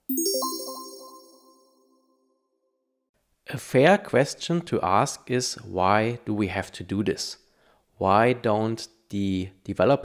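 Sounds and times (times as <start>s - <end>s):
rising bell-like chime notes: 0.0s - 1.9s.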